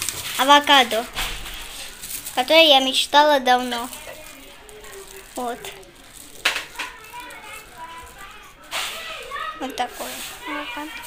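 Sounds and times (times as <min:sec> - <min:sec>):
faint children's voices: 0:00.0 - 0:11.0
plastic bag crinkling: 0:00.0 - 0:11.0.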